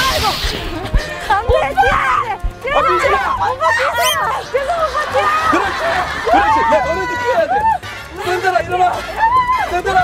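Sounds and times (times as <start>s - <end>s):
voices shouting and squealing: 1.3s - 5.6s.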